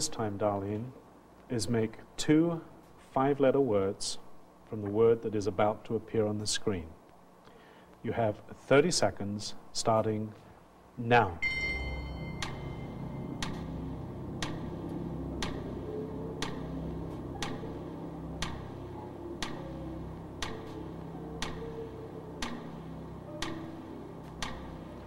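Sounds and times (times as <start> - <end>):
countdown clock ticking: 11.4 - 25.0
low sustained music bed: 11.4 - 25.0.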